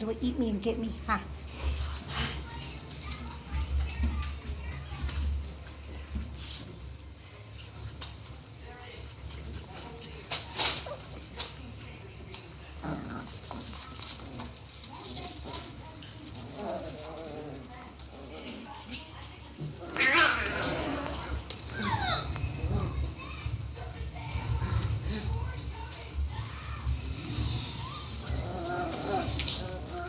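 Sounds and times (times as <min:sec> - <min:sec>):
puppies scuffling: 0:00.0 - 0:30.0
puppy noises: 0:00.0 - 0:30.0.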